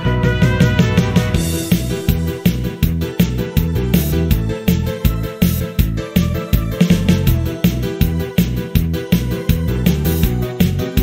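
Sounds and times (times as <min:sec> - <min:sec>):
instrumental pop-rock backing track: 0:00.0 - 0:11.0.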